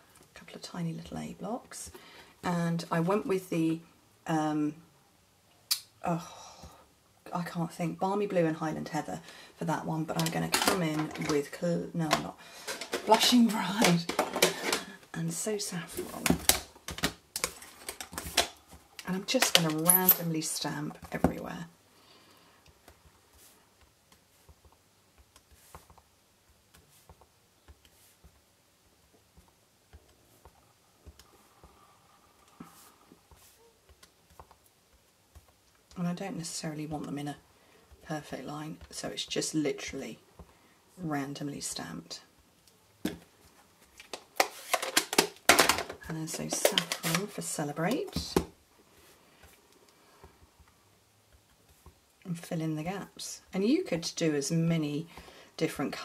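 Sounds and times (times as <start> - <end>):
plastic cases clicking and knocking: 12.1 - 15.0, 16.0 - 18.6, 44.0 - 47.3.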